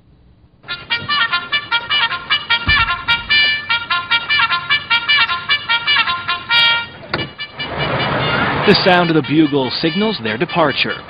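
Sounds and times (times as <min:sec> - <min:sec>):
bugle call: 0:00.6 - 0:11.0.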